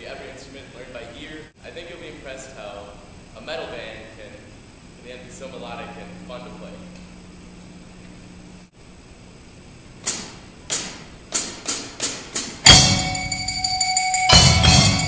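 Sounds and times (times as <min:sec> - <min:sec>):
low room hum: 0:00.0 - 0:15.0
drum kit with cymbal crash: 0:10.0 - 0:15.0
bass guitar: 0:12.7 - 0:15.0
mallet percussion: 0:12.7 - 0:15.0.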